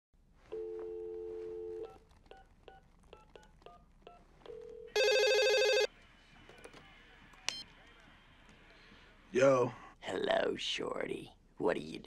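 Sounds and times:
dial tone: 0:00.5 - 0:02.0, 0:04.5 - 0:05.9
phone ringing: 0:00.5 - 0:05.9.

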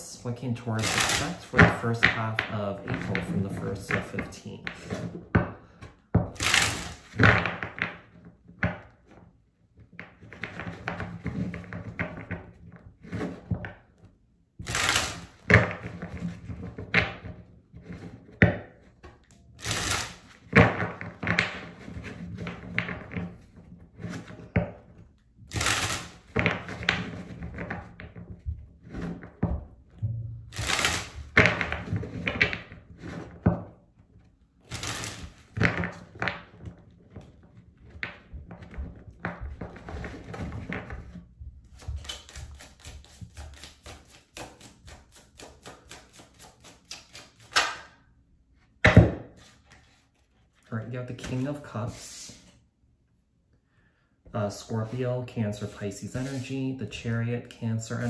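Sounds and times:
cards being shuffled: 0:00.8 - 0:05.0, 0:06.4 - 0:08.0, 0:14.6 - 0:15.8, 0:19.6 - 0:20.4, 0:25.5 - 0:27.8, 0:30.5 - 0:32.6, 0:34.7 - 0:36.5, 0:39.6 - 0:48.0, 0:49.4 - 0:52.6, 0:55.6 - 0:56.5.

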